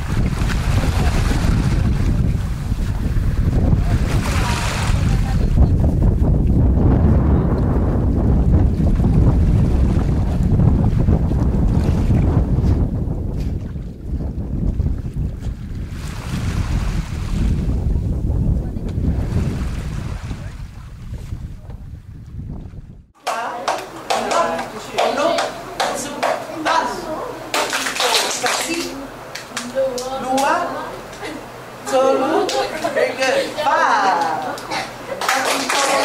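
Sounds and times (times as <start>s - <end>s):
sea water washing: 0.0s - 17.8s, 23.5s - 29.8s
wind buffeting microphone: 0.0s - 23.2s.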